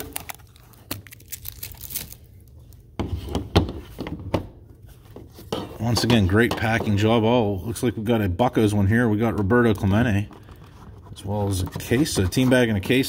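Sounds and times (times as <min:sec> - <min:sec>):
crinkling: 0:00.0 - 0:02.9.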